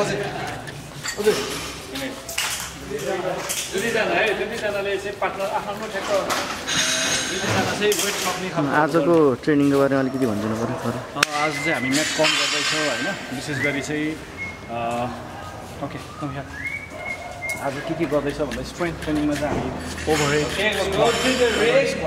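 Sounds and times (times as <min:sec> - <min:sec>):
man speaking: 0:07.4 - 0:16.5.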